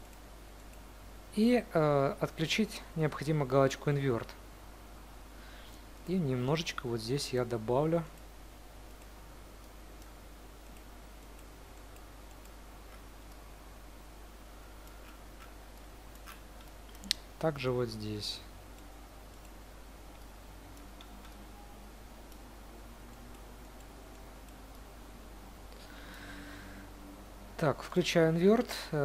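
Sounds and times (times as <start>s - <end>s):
steady low hum: 0.0s - 29.0s
computer mouse clicks: 8.9s - 13.4s, 14.8s - 17.3s, 18.8s - 21.6s
faint clicks: 14.8s - 17.3s.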